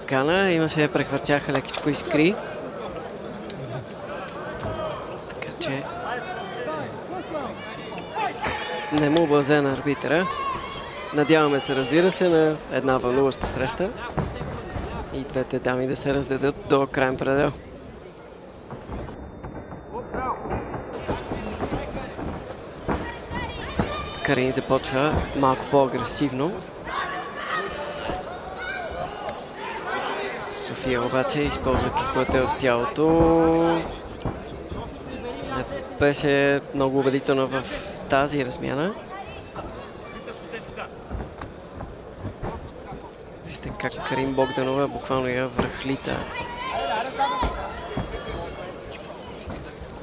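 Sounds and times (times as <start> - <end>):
arena crowd noise: 0.0 - 50.0.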